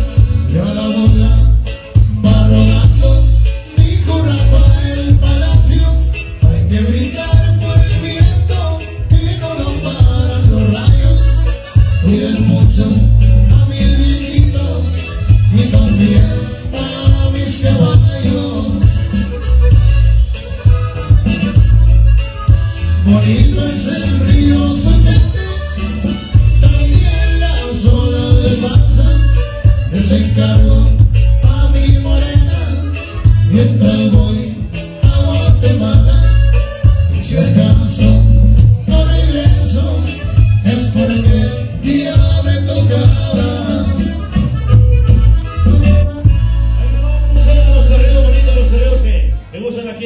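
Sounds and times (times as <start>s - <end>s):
steady drum beat: 0.0s - 48.1s
heavy bass line: 0.0s - 49.6s
live band playing instrumental: 0.0s - 50.0s.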